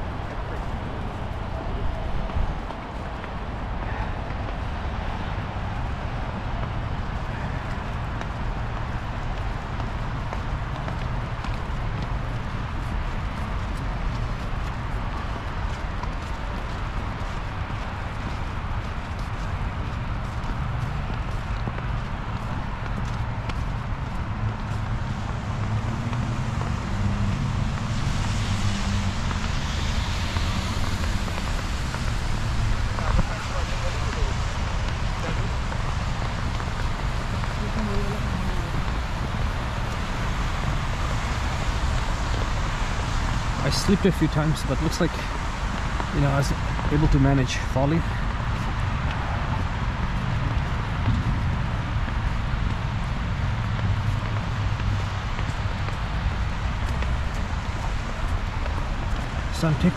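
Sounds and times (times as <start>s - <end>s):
traffic noise: 0.0s - 59.9s
wind rumble on microphone: 0.0s - 59.9s.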